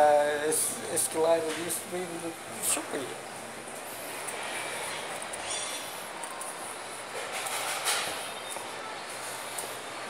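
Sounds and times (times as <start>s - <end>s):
escalator rumble and hiss: 0.0s - 10.0s.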